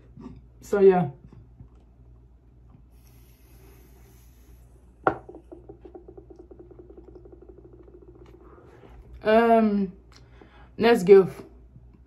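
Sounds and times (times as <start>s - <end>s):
faint airy hiss of vape: 2.9s - 5.0s
pulsing creaky throat hum: 5.7s - 9.2s.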